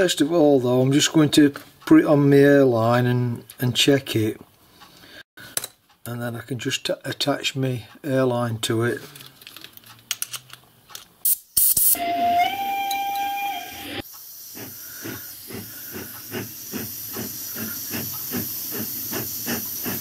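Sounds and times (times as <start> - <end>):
whistling tone: 12.0 - 14.0
compressed air hissing: 13.8 - 20.0.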